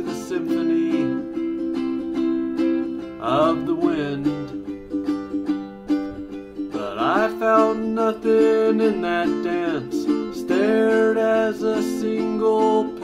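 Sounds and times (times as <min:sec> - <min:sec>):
ukulele strumming: 0:00.0 - 0:13.0.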